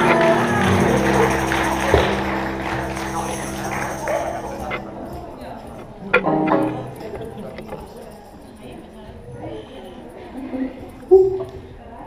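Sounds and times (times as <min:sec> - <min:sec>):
live band sustained notes: 0:00.0 - 0:07.9
voices in room: 0:00.0 - 0:12.0.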